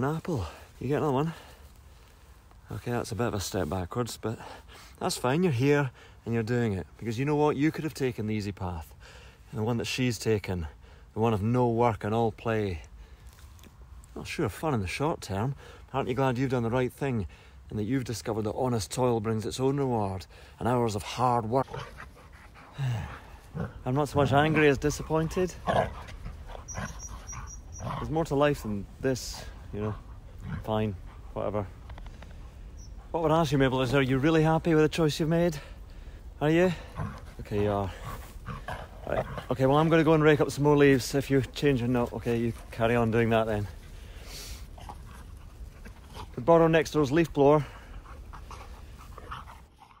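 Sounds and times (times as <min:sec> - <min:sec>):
dog breathing: 0:20.2 - 0:33.5, 0:35.5 - 0:39.6, 0:41.9 - 0:46.4, 0:47.3 - 0:50.0
dog vocal sounds: 0:21.4 - 0:33.5
dogs play-fighting: 0:21.6 - 0:28.2, 0:44.6 - 0:46.4, 0:47.8 - 0:50.0.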